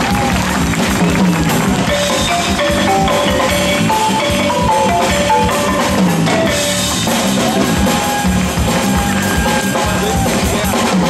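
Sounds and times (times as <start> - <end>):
live band music: 0.0 - 11.0
balafon played with mallets: 0.8 - 10.4.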